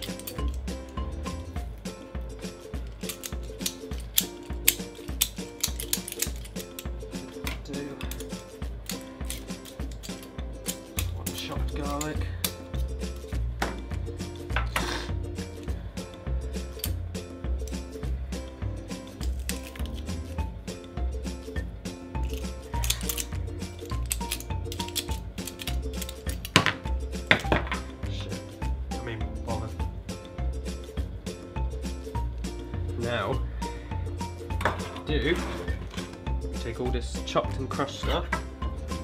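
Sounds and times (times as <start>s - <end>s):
background music with bass beat: 6.9s - 26.0s, 26.8s - 39.0s.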